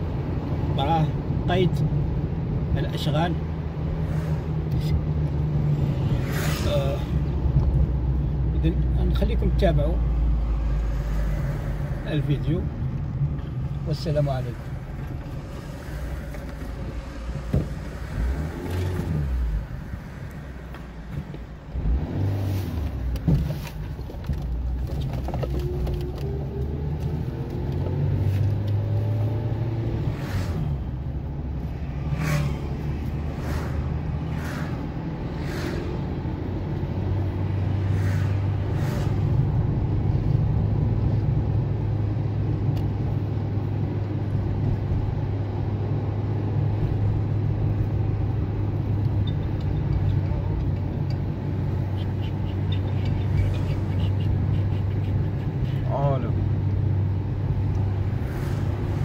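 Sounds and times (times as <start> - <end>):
car engine and road hum: 0.0 - 59.0.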